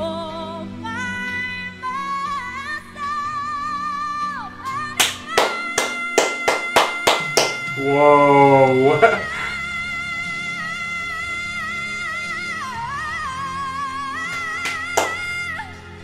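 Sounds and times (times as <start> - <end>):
sharp drum hits or claps: 5.0 - 7.8, 14.4 - 15.2
loud held sung note: 5.3 - 9.6.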